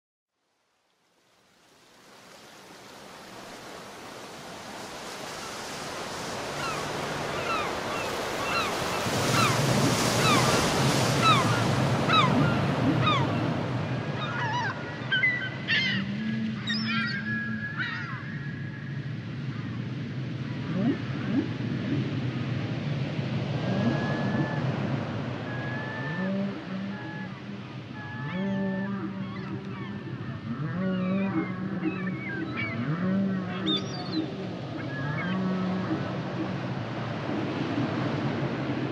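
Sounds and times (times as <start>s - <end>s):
wind: 0.3s - 38.9s
ocean surf washing on beach: 1.2s - 38.9s
whale song moans and whistles: 7.4s - 13.6s, 14.2s - 18.4s, 20.6s - 22.2s, 23.6s - 37.0s.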